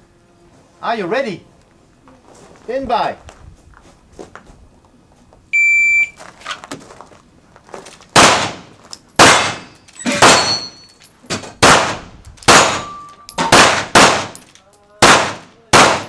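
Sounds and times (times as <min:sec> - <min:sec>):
shot timer beep: 0:05.6 - 0:06.2
handgun shots: 0:08.1 - 0:10.7, 0:11.3 - 0:14.4, 0:15.0 - 0:16.0
bullet ringing steel target: 0:09.2 - 0:14.4.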